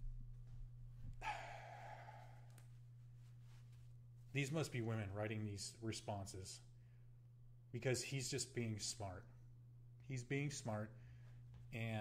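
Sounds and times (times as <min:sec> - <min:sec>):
low electrical hum: 0:00.0 - 0:12.0
man sighing: 0:01.2 - 0:02.6.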